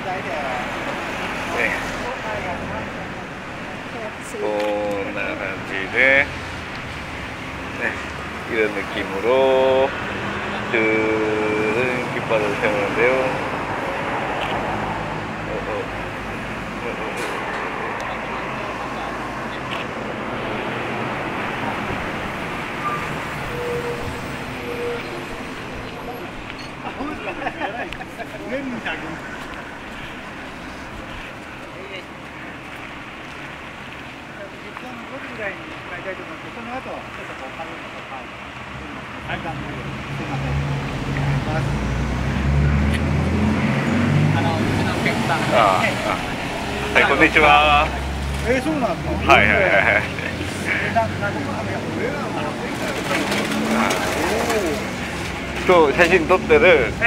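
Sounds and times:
men talking: 0.0s - 3.0s, 3.6s - 20.5s, 23.7s - 57.0s
men chatting at a distance: 0.0s - 22.4s, 23.5s - 57.0s
road traffic passing: 0.0s - 57.0s
street background hum: 0.0s - 57.0s.

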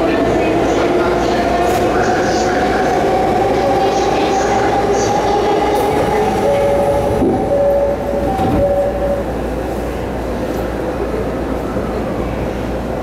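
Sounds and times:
train wheels rumbling: 0.0s - 12.0s.

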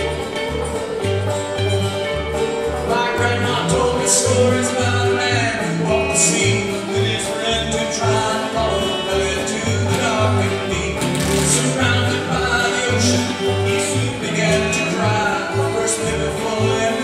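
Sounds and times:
acoustic guitar: 0.0s - 17.0s
banjo: 0.0s - 17.0s
electric guitar: 0.0s - 17.0s
upright bass plucking: 0.0s - 17.0s
group of voices singing: 2.6s - 17.0s.

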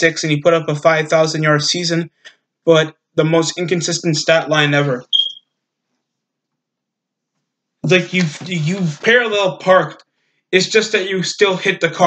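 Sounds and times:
high-pitched chirp: 5.0s - 5.4s.

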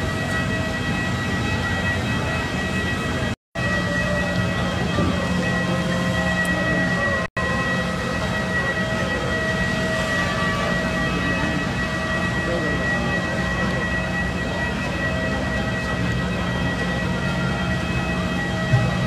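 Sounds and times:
high steady turbine whine: 0.0s - 19.0s
low machine drone: 0.0s - 19.0s.

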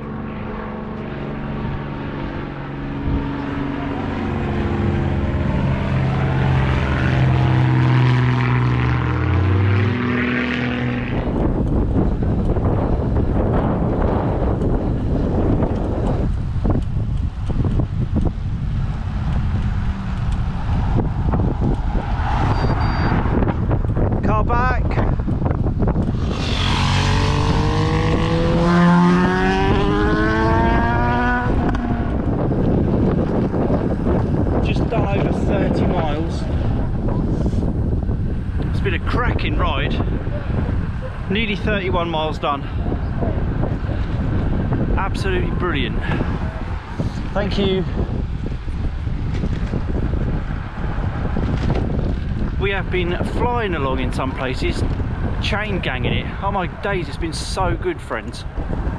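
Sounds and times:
propeller aeroplane engine drone: 0.0s - 24.2s, 25.0s - 58.9s
engine-like whine: 0.0s - 24.3s, 25.4s - 48.1s
bicycle tyre noise on road: 0.0s - 58.9s
wind rushing: 0.0s - 58.9s.

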